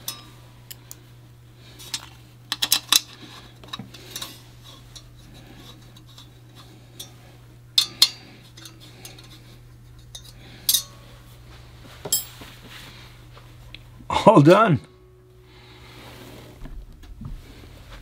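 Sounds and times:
steady low hum: 0.0s - 18.0s
metal parts clinking on metal: 1.9s - 4.4s, 7.8s - 9.4s, 10.0s - 10.9s.

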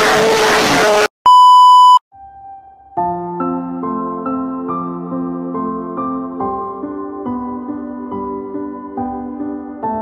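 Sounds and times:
censor bleep: 1.3s - 2.0s.

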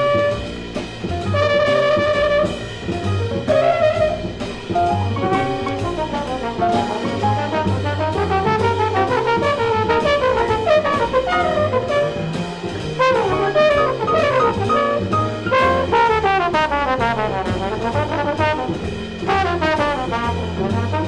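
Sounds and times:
double bass walking line: 0.0s - 21.0s
piano: 0.0s - 21.0s
horn section sliding lines: 1.2s - 12.4s, 13.0s - 21.0s.

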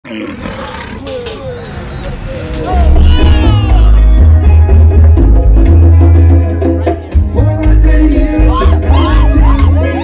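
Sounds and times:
intro music: 1.0s - 10.0s.

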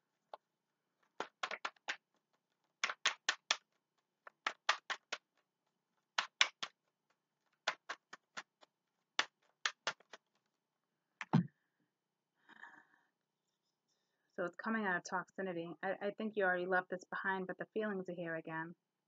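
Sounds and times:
cards shuffled by hand: 1.0s - 5.4s, 6.2s - 10.5s.

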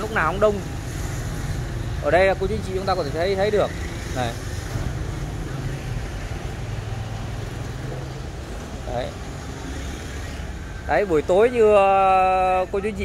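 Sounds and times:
engine hum: 0.0s - 13.0s
scooters and cars passing: 0.0s - 13.0s.

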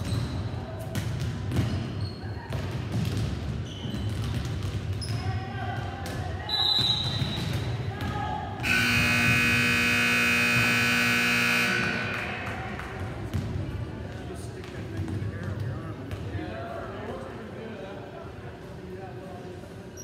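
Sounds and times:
volleyballs hit and bouncing: 0.0s - 16.4s
players' voices: 5.0s - 20.0s
scoreboard buzzer blare: 8.6s - 12.6s.

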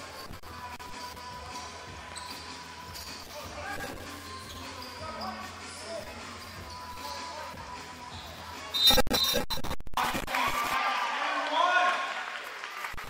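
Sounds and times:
background music: 0.0s - 8.9s.

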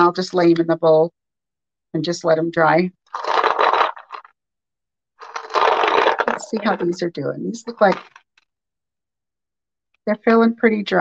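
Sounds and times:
beads rattling in paper bowl: 3.1s - 4.3s, 5.2s - 8.2s.

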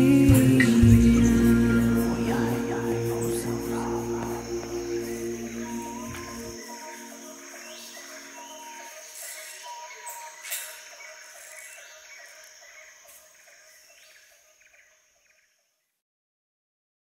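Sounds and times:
held music notes: 0.0s - 10.3s
birds calling: 0.0s - 15.6s
insect trill: 0.0s - 15.9s.

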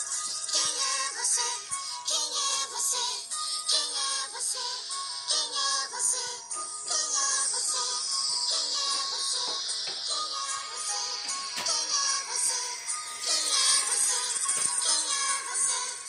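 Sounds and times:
children's song with vocal melody: 0.0s - 16.0s.

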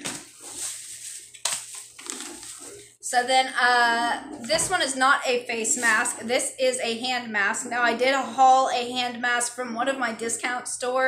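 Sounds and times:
plastic packaging crinkling: 0.0s - 2.9s.

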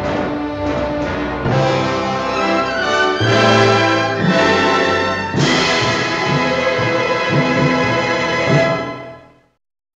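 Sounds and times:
orchestral final chord: 1.4s - 9.2s.

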